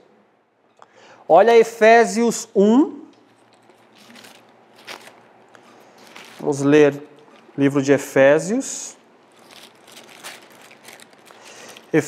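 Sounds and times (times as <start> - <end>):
pages rustling: 3.3 - 7.7, 9.2 - 12.0.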